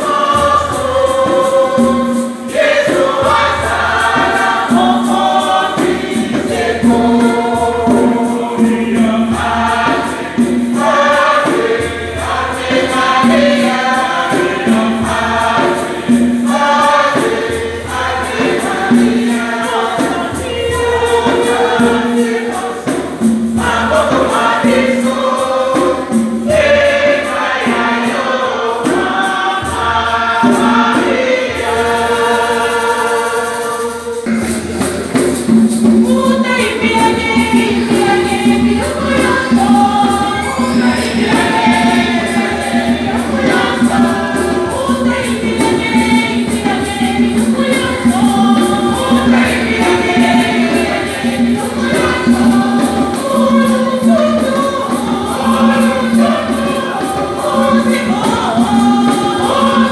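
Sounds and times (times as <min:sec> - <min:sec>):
light percussion beat: 0:00.0 - 0:59.9
women's choir singing a hymn: 0:00.0 - 0:59.9.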